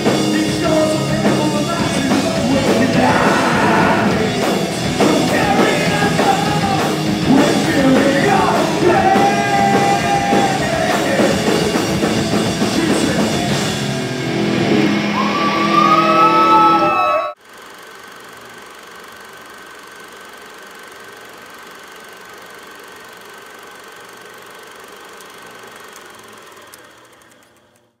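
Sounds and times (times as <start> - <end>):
heavy rock band playing loudly: 0.0 - 17.2
high tone bending in pitch: 14.7 - 17.4.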